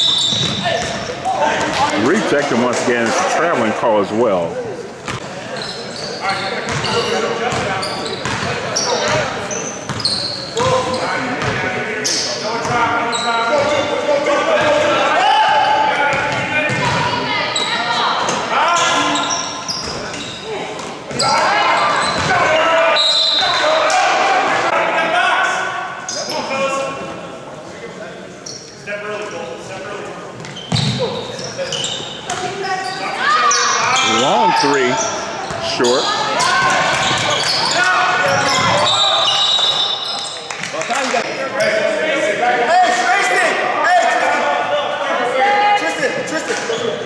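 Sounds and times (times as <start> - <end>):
players and spectators chattering: 0.0 - 47.0
basketball bouncing on hardwood: 16.1 - 17.0.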